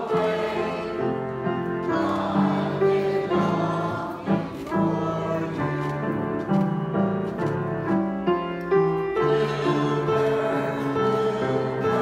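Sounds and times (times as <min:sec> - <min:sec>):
mixed choir singing: 0:00.0 - 0:06.2, 0:09.1 - 0:12.0
grand piano: 0:00.0 - 0:12.0.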